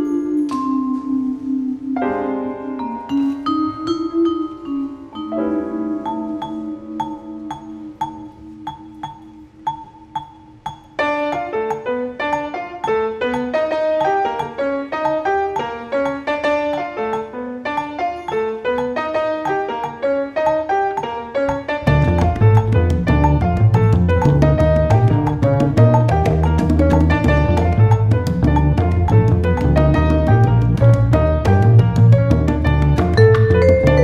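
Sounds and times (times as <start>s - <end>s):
piano chords: 0.0s - 34.0s
vibraphone melody: 2.7s - 29.0s, 32.8s - 34.0s.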